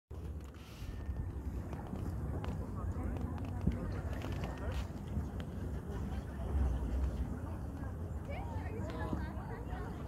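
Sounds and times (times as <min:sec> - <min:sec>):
steady low rumble: 0:00.1 - 0:10.0.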